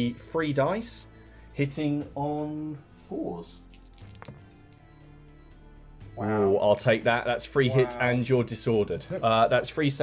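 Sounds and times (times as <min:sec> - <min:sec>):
quiet background music: 0:00.0 - 0:10.0
dice clicking in a tray: 0:03.7 - 0:04.4.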